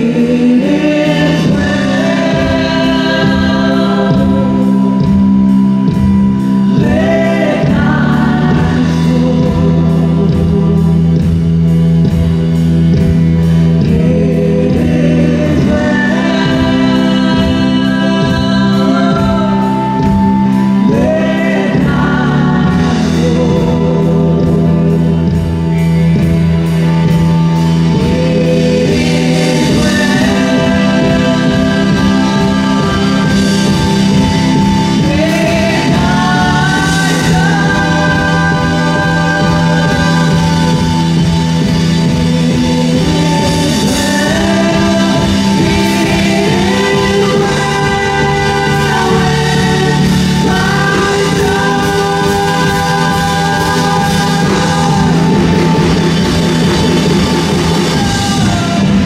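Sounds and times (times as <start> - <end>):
acoustic guitar and band: 0.0 - 59.0
keyboard: 0.0 - 59.0
woman singing into microphone: 0.0 - 59.0.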